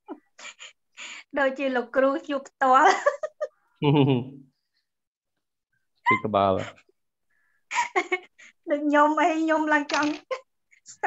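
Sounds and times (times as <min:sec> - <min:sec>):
man speaking over video call: 0:06.1 - 0:06.8.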